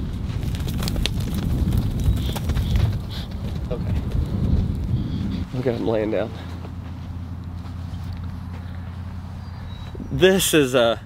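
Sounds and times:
low rumble: 0.0s - 10.1s
hooves knocking on dirt: 0.0s - 10.2s.

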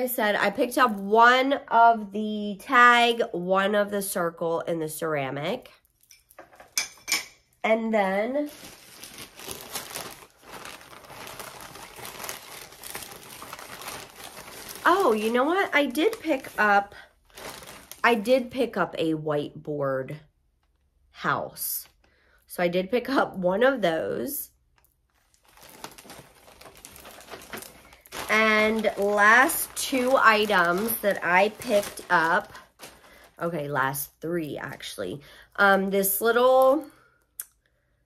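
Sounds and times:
crinkly packaging rustling: 8.1s - 18.5s, 24.7s - 34.9s.

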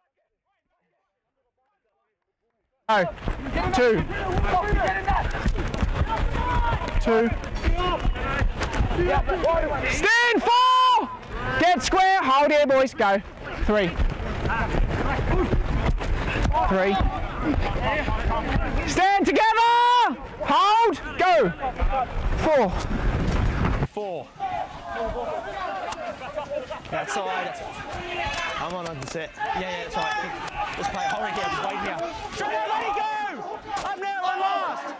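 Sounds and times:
players shouting calls: 2.9s - 22.8s, 24.0s - 34.9s
running feet thudding on grass: 3.1s - 9.6s.

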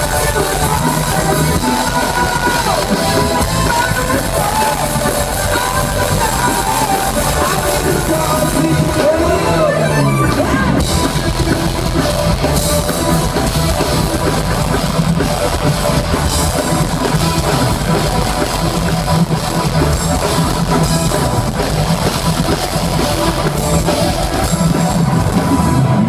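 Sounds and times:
drum kit beating: 0.0s - 9.7s, 10.4s - 26.0s
electric guitar: 0.0s - 26.0s
rock band playing: 0.0s - 26.0s.

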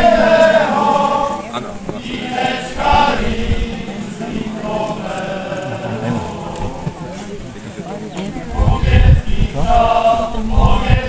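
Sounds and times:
group singing together: 0.0s - 7.4s, 8.3s - 11.0s
crowd voices: 0.0s - 11.0s
heavy low rumbling thuds: 1.8s - 3.9s, 8.5s - 11.0s.

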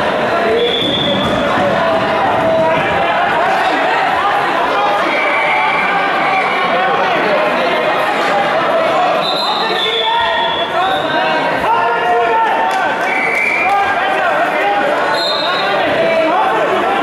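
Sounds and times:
many voices shouting: 0.0s - 17.0s.

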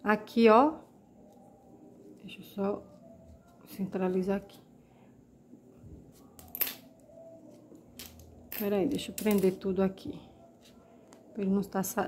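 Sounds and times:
handling ribbon and pins: 6.0s - 11.3s.

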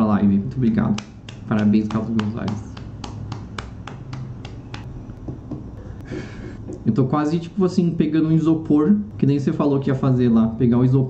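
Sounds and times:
rhythmic hand clicks: 0.7s - 5.7s.

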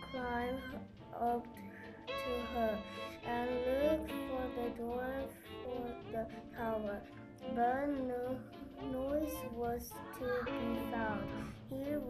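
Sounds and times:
soft instrumental accompaniment: 0.0s - 12.0s.

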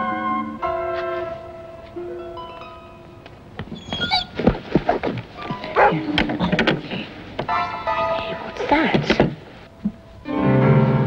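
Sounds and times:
background music: 0.0s - 3.6s, 6.9s - 11.0s
dog barking: 5.6s - 6.0s.

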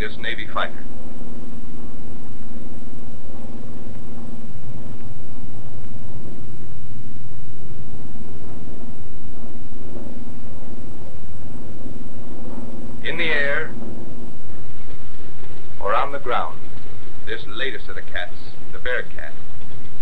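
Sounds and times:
piston aircraft engine drone: 0.0s - 20.0s.

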